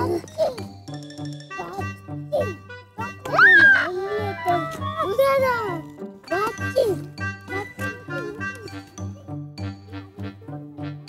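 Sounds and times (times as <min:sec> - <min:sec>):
upbeat children's music: 0:00.0 - 0:11.0
child calling out: 0:03.3 - 0:08.8.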